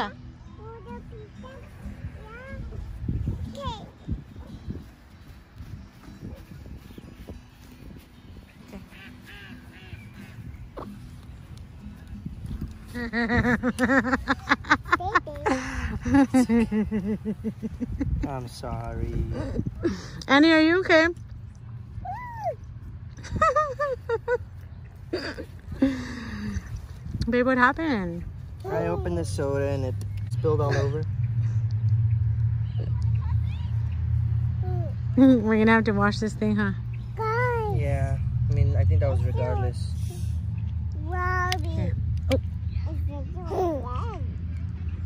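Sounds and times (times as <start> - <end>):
low outdoor rumble: 0.0 - 45.0
ducks calling faintly: 8.5 - 11.0.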